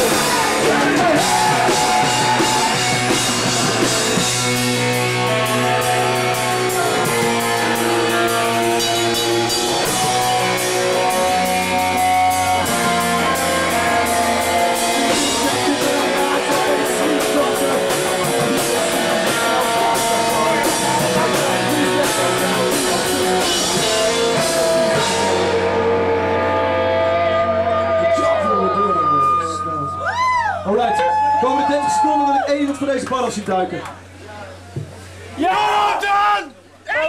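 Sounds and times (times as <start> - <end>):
drums and cymbal hits: 0.0 - 27.3
punk rock band playing: 0.0 - 29.6
electric guitars: 0.0 - 34.2.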